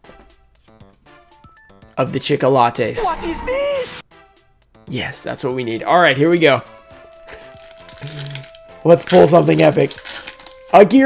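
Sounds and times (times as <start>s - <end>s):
background music note: 3.0s - 4.0s
plastic wrapper crinkling: 7.2s - 10.7s.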